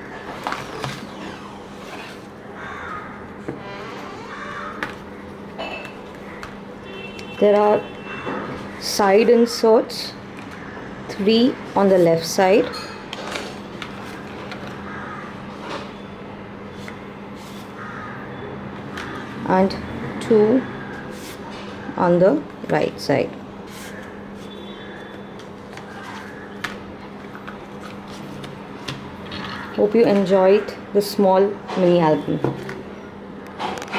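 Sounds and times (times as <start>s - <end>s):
paper taps and rustles: 25.4s - 29.1s.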